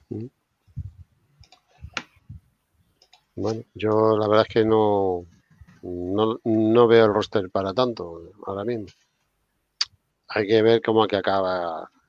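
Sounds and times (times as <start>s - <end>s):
low voice murmurs: 0.0s - 0.3s
sharp clicks: 1.4s - 2.2s, 3.0s - 4.0s.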